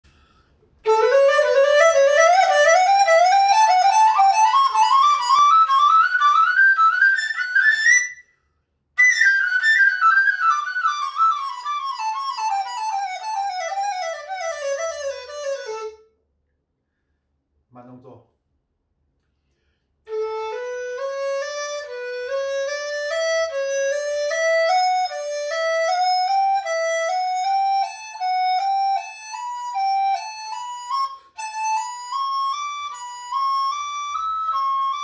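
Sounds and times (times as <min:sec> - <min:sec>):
bamboo flute playing scales: 0:00.1 - 0:16.2, 0:20.1 - 0:35.0.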